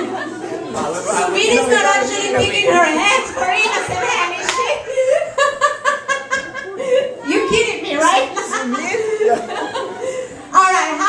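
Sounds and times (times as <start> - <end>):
woman laughing: 2.6 - 7.3, 8.0 - 10.3.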